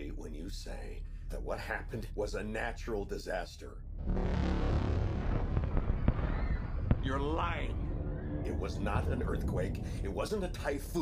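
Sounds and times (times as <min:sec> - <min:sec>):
deep steady rumble: 0:00.0 - 0:11.0.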